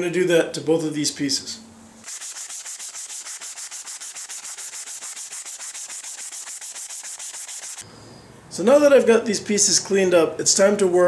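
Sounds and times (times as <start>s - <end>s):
sandpaper rasping on plastic pipe: 2.0s - 7.8s.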